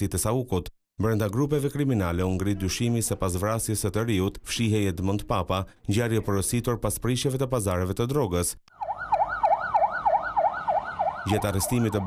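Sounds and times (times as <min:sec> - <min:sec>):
police siren fast yelp: 0:08.7 - 0:12.0.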